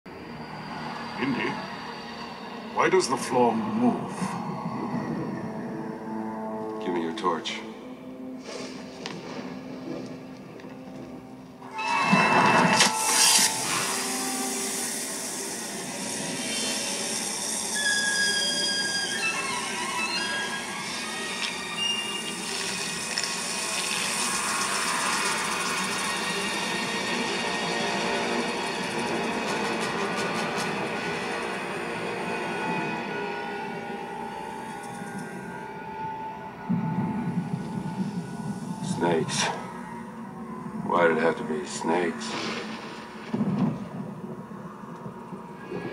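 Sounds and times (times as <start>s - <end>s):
tense orchestral music: 0.1s - 45.9s
snakes hissing: 20.9s - 28.9s.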